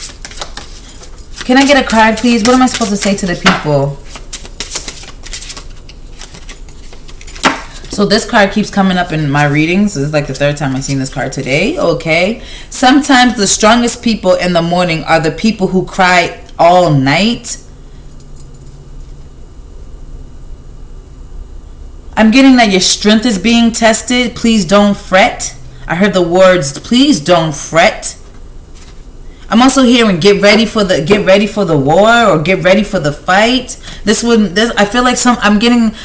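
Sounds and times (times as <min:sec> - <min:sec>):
cards being shuffled: 0:00.0 - 0:07.9, 0:28.3 - 0:29.0
low room hum: 0:00.0 - 0:36.0.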